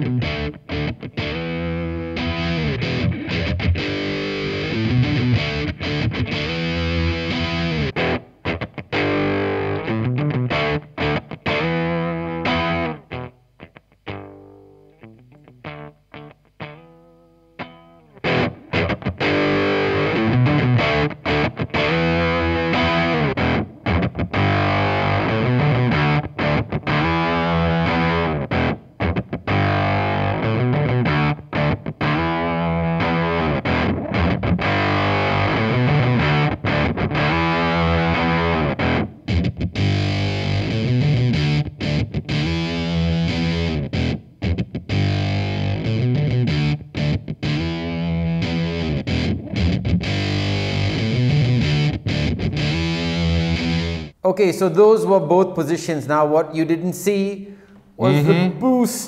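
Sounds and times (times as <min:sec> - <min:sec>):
distorted electric guitar: 0:00.0 - 0:54.2.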